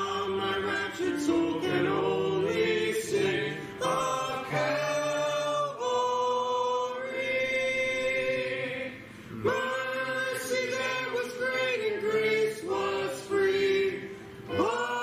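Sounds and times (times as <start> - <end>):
group singing a hymn: 0.0 - 15.0.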